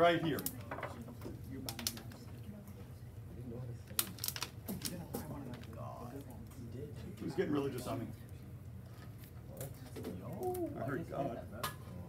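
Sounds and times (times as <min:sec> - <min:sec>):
faint murmuring voices: 0:00.0 - 0:12.0.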